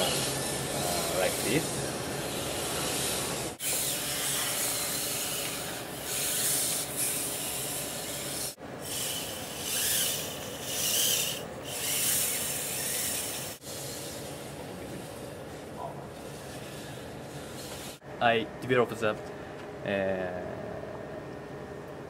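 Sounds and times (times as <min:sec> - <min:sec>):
robot actuators hissing: 0:00.0 - 0:18.0
rubbing whirring actuator noise: 0:00.0 - 0:18.0.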